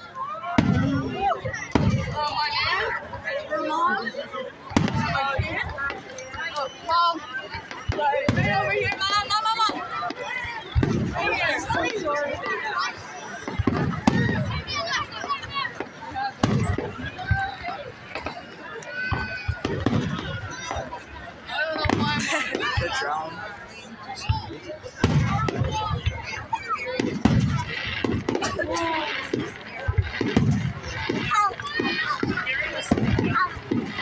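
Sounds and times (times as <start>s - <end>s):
crowd chatter: 0.0s - 34.0s
fireworks booming: 0.5s - 3.0s, 4.7s - 6.5s, 7.5s - 23.2s, 24.1s - 34.0s.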